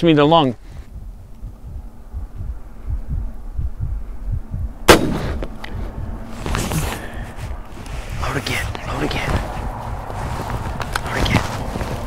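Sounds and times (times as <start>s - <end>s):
muffled heartbeat-like thudding: 0.8s - 6.3s
air rifle shot: 4.9s - 5.8s.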